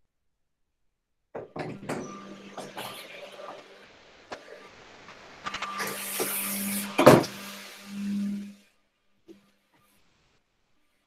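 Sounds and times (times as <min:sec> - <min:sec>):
vacuum cleaner running: 0:01.4 - 0:08.8.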